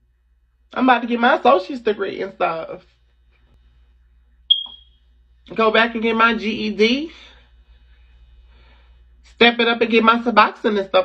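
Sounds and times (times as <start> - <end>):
high-pitched electronic beep: 4.5 - 4.9.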